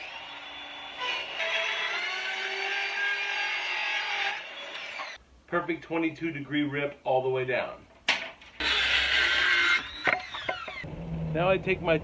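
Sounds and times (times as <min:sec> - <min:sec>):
circular saw cutting wood: 0:01.0 - 0:05.2, 0:08.6 - 0:10.9.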